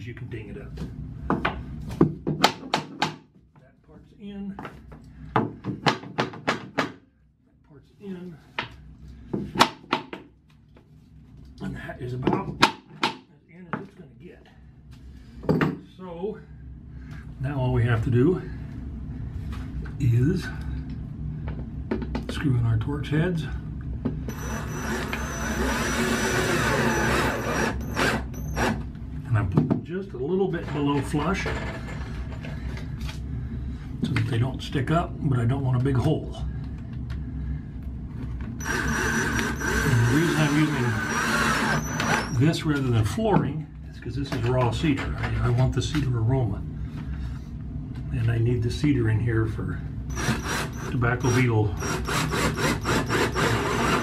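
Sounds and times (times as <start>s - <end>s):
cordless drill driving screw into wood: 24.3s - 28.8s, 38.6s - 42.4s, 50.1s - 54.0s.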